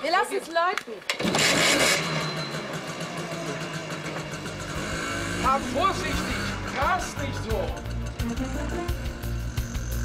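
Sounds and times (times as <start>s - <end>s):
motorbike engine starting and idling: 1.1s - 10.0s.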